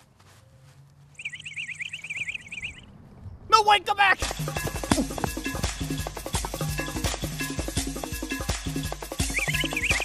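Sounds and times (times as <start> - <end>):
bird trilling: 1.2 - 3.0, 9.2 - 10.0.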